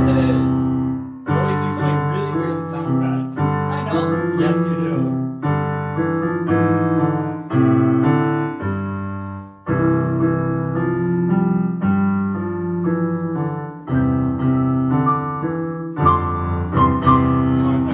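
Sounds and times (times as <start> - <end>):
digital keyboard piano chords: 0.0 - 17.9.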